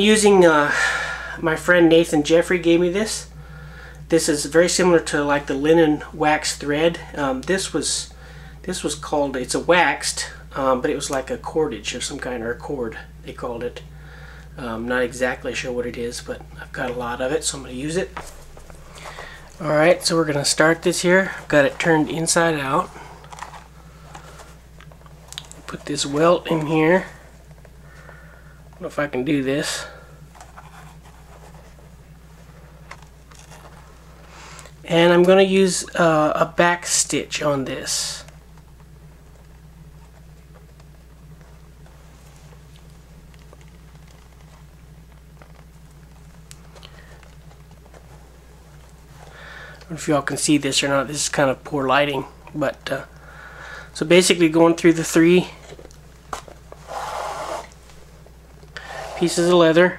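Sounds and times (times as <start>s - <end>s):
steady low hum: 0.0s - 59.9s
leather rustling and scratching: 18.0s - 27.8s, 30.2s - 34.3s, 39.6s - 49.3s
thread rasping through leather: 56.8s - 57.8s.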